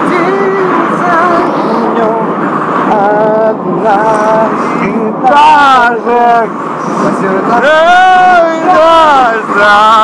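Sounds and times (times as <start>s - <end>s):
men singing: 0.0s - 10.0s
train rumble: 0.0s - 10.0s.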